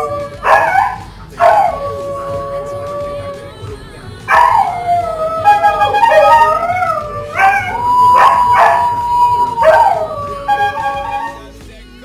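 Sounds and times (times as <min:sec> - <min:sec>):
dog howling: 0:00.0 - 0:11.5.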